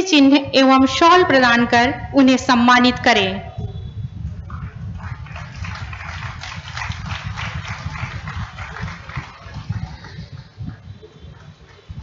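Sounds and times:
audience applauding: 4.5 - 12.0.

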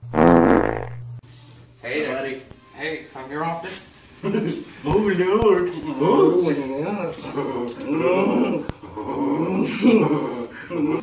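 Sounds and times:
loud low fart: 0.0 - 1.0.

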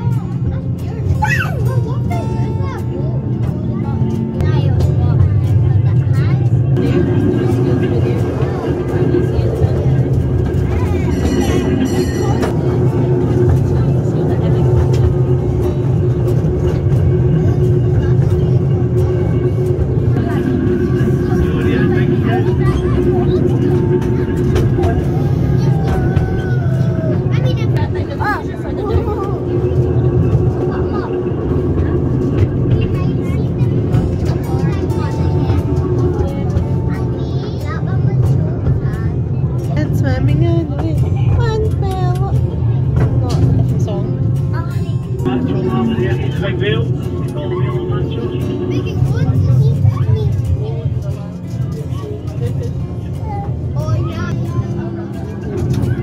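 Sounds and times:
miniature train rumbling on track: 0.0 - 56.0
passengers' voices: 0.0 - 56.0.

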